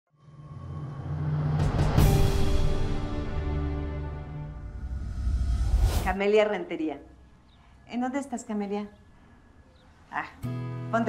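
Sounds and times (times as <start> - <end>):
theme music: 0.1 - 6.4
low rumbling drone: 0.2 - 6.2
quick whooshes: 4.8 - 6.2.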